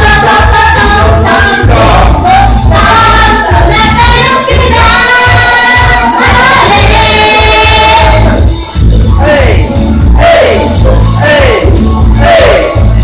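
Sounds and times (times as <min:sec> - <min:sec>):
group singing in harmony: 0:00.0 - 0:08.7, 0:09.3 - 0:13.0
pulsing bass line: 0:00.0 - 0:13.0.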